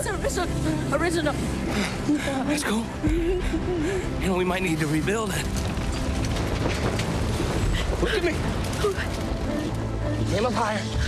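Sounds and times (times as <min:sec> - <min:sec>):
fire crackling: 0:00.0 - 0:11.0
fire rumbling: 0:00.0 - 0:11.0.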